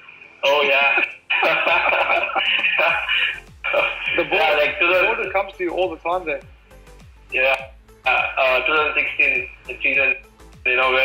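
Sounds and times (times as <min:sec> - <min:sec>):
men laughing over video call: 0:00.6 - 0:05.4.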